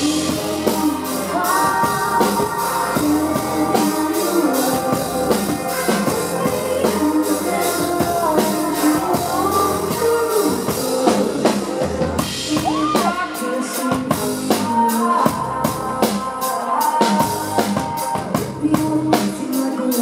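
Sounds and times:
drum kit steady beat: 0.0 - 20.0.

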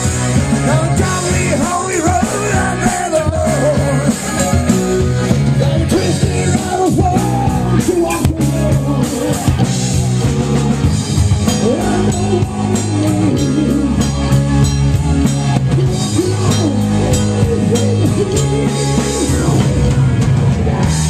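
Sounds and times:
drum kit: 0.0 - 21.0
electric guitars: 0.0 - 21.0
rock band playing: 0.0 - 21.0.

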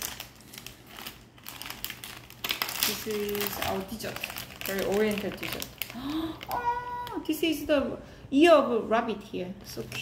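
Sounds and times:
plastic wrapper crinkling: 0.0 - 7.4.

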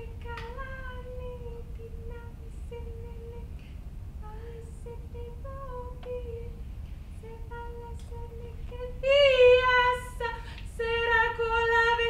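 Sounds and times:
woman breathing: 3.5 - 4.6, 10.4 - 10.7.

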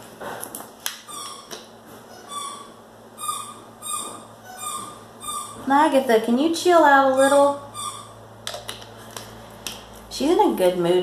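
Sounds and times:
pet animal squeaking: 1.0 - 5.8, 6.9 - 8.3.

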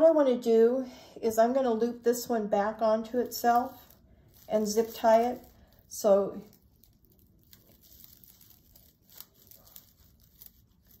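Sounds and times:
mesh netting rustling and crinkling: 3.4 - 11.0.

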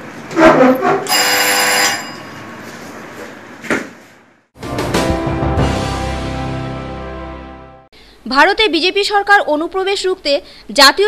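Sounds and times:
room noise: 0.0 - 4.5
loud ringing tone: 1.1 - 2.7.

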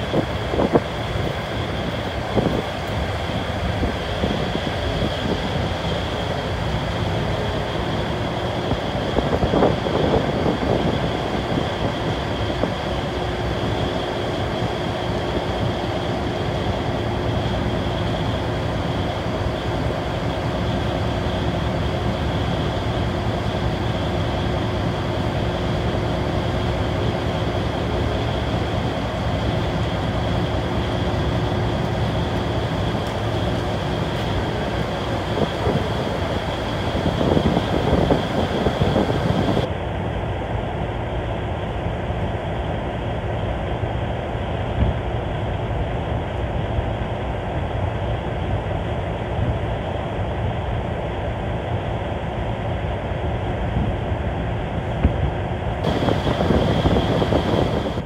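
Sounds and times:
wind on microphone: 0.0 - 18.8, 30.7 - 39.7, 53.2 - 58.0
boat engine rumble: 0.0 - 58.0.

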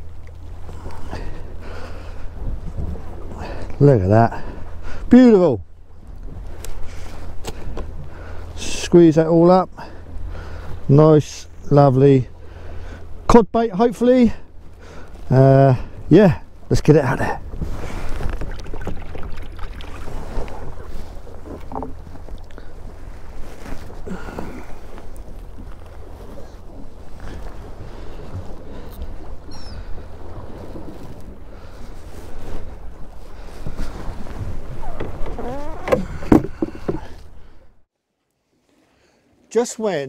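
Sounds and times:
low wind rumble on microphone: 0.0 - 10.9, 14.4 - 37.8
water slapping boat hull: 0.0 - 37.7.

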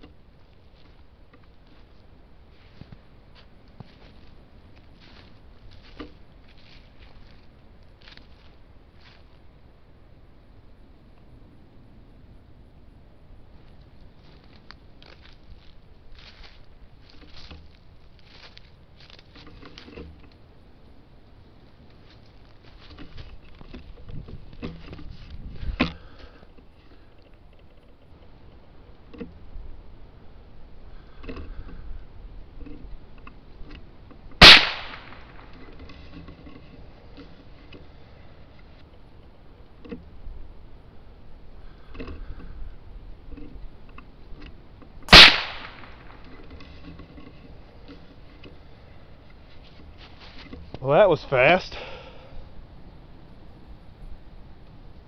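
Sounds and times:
rifle shots with echo: 34.4 - 35.5, 45.1 - 46.2.

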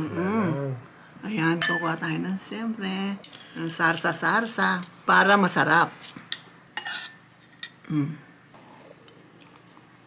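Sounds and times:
cutlery clinking on ceramic plate: 1.6 - 2.0, 6.3 - 7.8.

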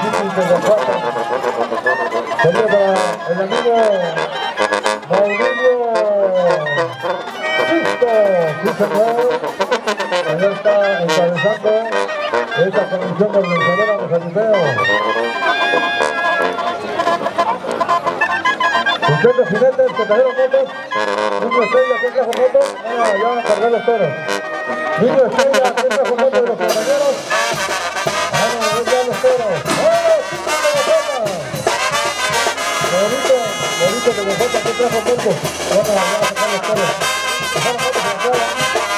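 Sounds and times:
brass band playing: 0.0 - 38.9
trumpets and clarinets: 0.0 - 38.9
percussion hits: 26.6 - 38.9.

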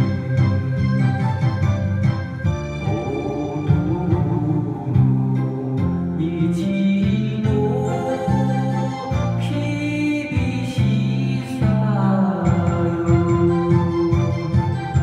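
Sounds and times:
bass line: 0.0 - 15.0
organ-like keyboard melody: 0.0 - 15.0.

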